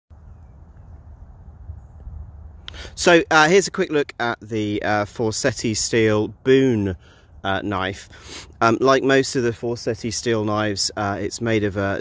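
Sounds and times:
wind rumbling on microphone: 0.1 - 8.2.

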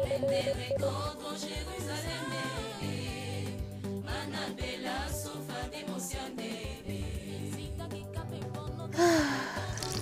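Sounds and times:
background music: 0.0 - 10.0
person sighing: 9.0 - 10.0.

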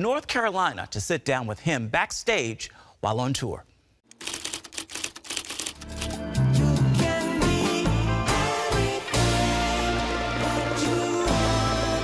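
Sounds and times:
fast sharp clicks: 4.1 - 6.2
music: 5.8 - 12.0.

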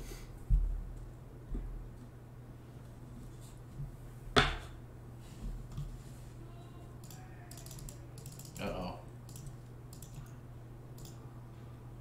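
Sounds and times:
computer keyboard typing: 7.0 - 11.2.

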